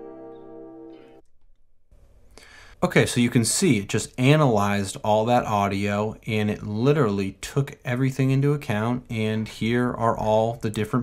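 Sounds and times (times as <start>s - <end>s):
man talking: 2.8s - 11.0s.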